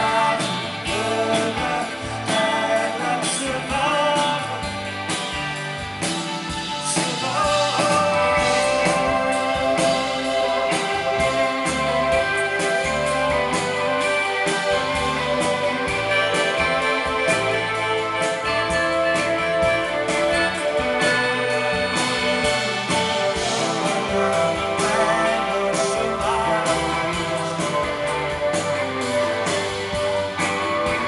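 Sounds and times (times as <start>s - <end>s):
drum-kit beat: 0.0s - 31.0s
electric guitar: 0.0s - 31.0s
keyboards: 0.0s - 31.0s.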